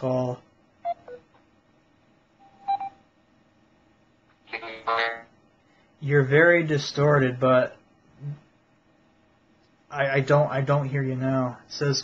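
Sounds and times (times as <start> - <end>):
short electronic beep: 2.4 - 3.0
distorted voice over call: 4.5 - 5.3.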